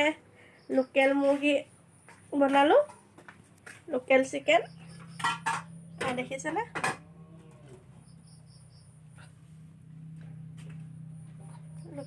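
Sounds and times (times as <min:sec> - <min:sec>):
woman's voice: 0:00.0 - 0:01.7, 0:02.3 - 0:02.9, 0:03.9 - 0:04.8, 0:06.0 - 0:06.8
steady low hum: 0:00.0 - 0:12.0.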